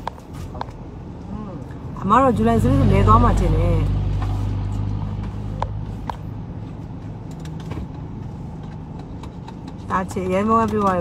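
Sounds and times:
car engine hum in cabin: 0:00.0 - 0:11.0.

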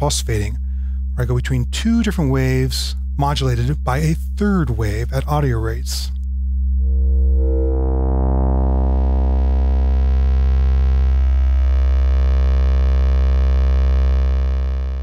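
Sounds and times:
synthesizer low buzzy note: 0:00.0 - 0:15.0.

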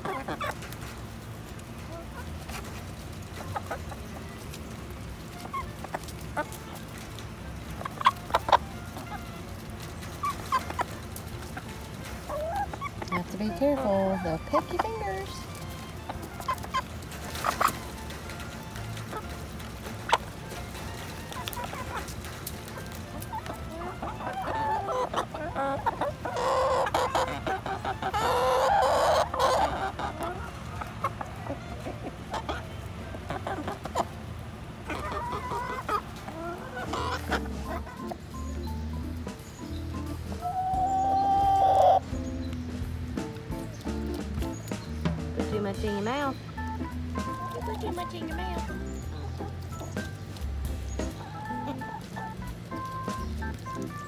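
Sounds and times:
hens clucking softly: 0:00.0 - 0:54.0
background music with held notes: 0:01.8 - 0:34.2, 0:34.9 - 0:54.0.

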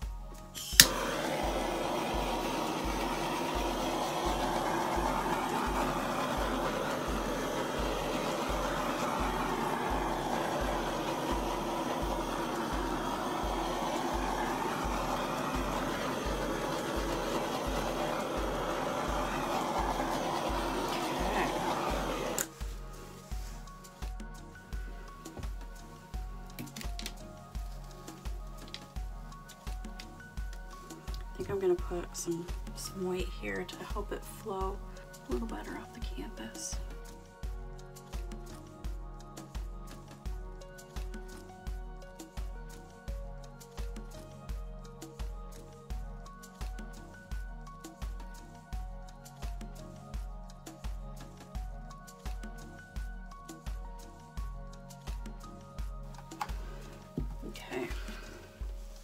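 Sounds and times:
background music with steady beat: 0:00.0 - 0:59.0
torch flame hissing: 0:00.4 - 0:37.3, 0:54.9 - 0:59.0.

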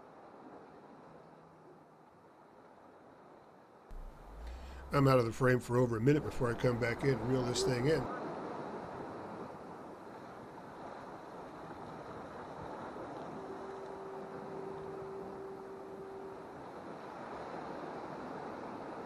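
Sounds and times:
wind: 0:00.0 - 0:19.0
steady tone: 0:03.9 - 0:08.2, 0:13.1 - 0:17.0
surf washing against rocks: 0:03.9 - 0:19.0.

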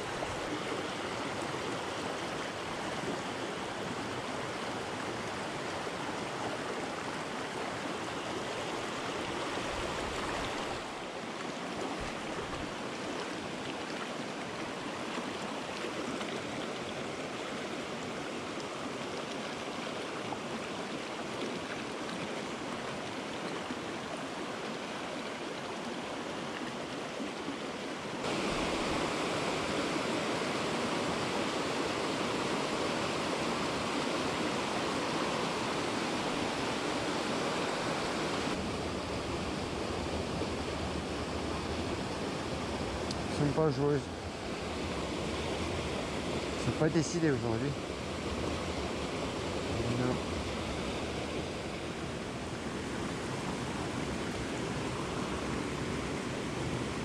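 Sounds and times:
stream rushing over stones: 0:00.0 - 0:57.0.

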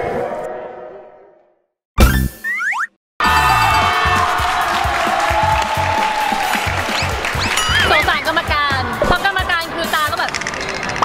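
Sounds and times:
upbeat background music: 0:02.0 - 0:10.4.

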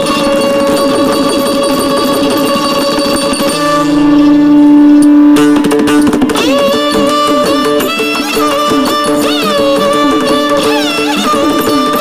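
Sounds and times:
plucked string instrument melody: 0:00.0 - 0:12.0
steady drone: 0:00.0 - 0:12.0.

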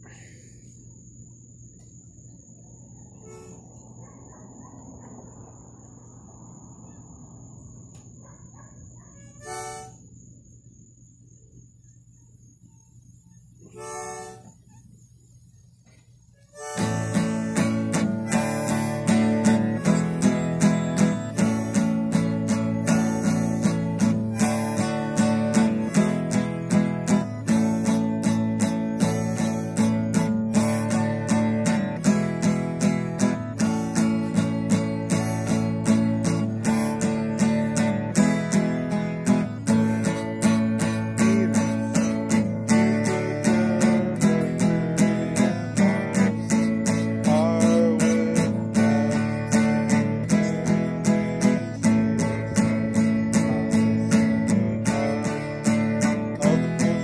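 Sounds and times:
acoustic guitar strumming: 0:03.2 - 0:03.7, 0:09.2 - 0:10.0, 0:13.6 - 0:14.8, 0:16.5 - 0:57.0
harmonica long held notes: 0:03.2 - 0:03.7, 0:09.4 - 0:10.1, 0:13.6 - 0:14.6, 0:16.4 - 0:57.0.

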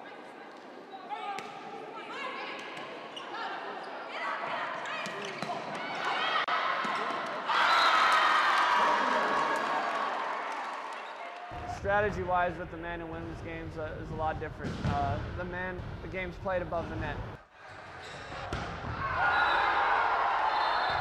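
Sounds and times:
shoes squeaking on court: 0:04.8 - 0:05.8
loud cheering and shouting: 0:05.6 - 0:11.8, 0:17.5 - 0:21.0
volleyball hits: 0:18.4 - 0:19.4.

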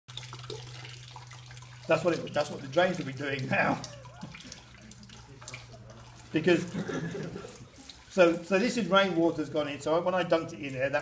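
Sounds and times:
water dripping into a bucket: 0:00.1 - 0:11.0.

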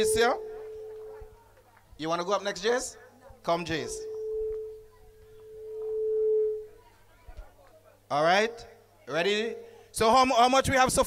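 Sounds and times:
microphone feedback ringing tone: 0:00.0 - 0:01.5, 0:03.6 - 0:06.9, 0:08.2 - 0:09.8.

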